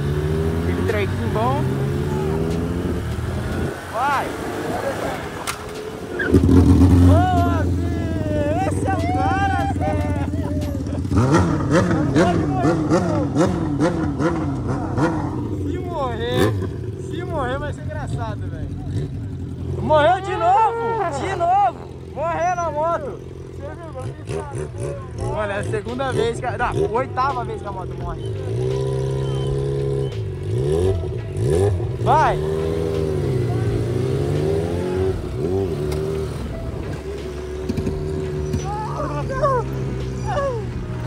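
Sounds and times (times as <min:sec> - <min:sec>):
motorcycle engine revving: 0:00.0 - 0:41.0
road and wind noise: 0:00.0 - 0:41.0.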